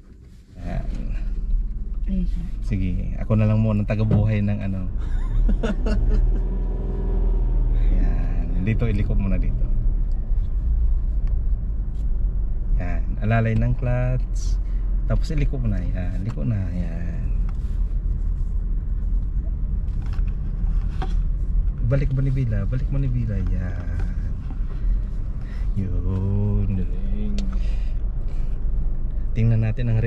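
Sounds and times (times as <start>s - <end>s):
car engine humming: 0.0s - 30.0s
road rumble: 0.0s - 30.0s.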